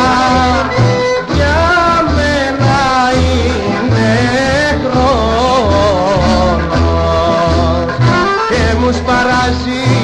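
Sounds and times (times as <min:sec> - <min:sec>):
ornamented folk melody: 0:00.0 - 0:10.0
plucked-string accompaniment: 0:00.0 - 0:10.0
pulsing bass: 0:00.0 - 0:10.0.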